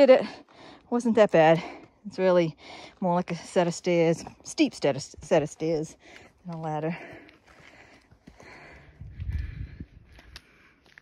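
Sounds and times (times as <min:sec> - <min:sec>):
footsteps on rocky trail: 0:00.0 - 0:11.0.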